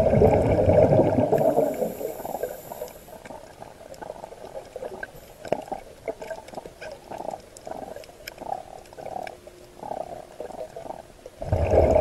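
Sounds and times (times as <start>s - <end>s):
diver exhaling bubbles underwater: 0.0s - 2.9s, 7.1s - 12.0s
faint crackling and clicks: 1.3s - 12.0s.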